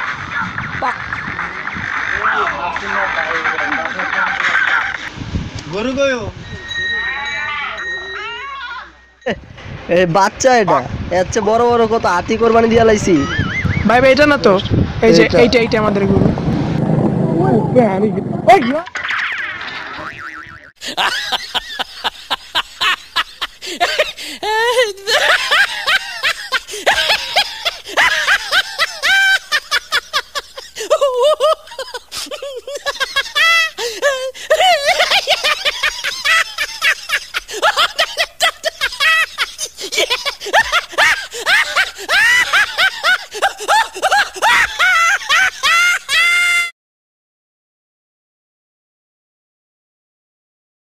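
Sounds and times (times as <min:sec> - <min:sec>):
high-pitched laughter: 0:18.6 - 0:46.7.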